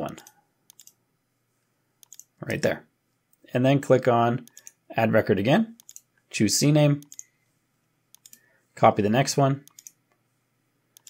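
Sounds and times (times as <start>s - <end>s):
computer mouse clicks: 0.1s - 1.0s, 2.0s - 2.3s, 4.4s - 4.8s, 5.8s - 6.1s, 7.0s - 7.3s, 8.1s - 8.4s, 9.6s - 10.0s.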